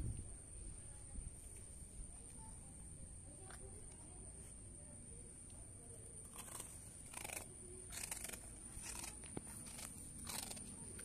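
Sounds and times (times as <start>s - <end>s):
dog crunching a rusk: 6.3s - 11.0s.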